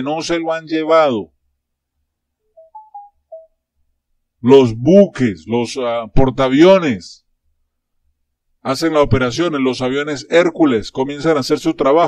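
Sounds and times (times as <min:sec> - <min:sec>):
electronic chime beeps: 0:02.5 - 0:03.6.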